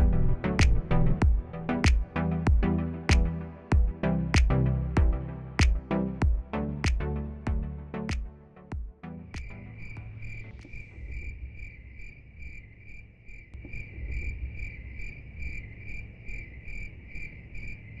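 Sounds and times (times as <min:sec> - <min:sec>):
electronic music beat: 0:00.0 - 0:10.8
insect chirping: 0:09.5 - 0:18.0.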